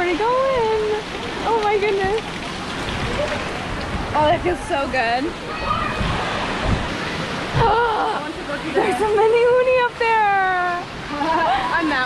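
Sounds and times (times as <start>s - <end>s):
water pouring and spraying: 0.0s - 12.0s.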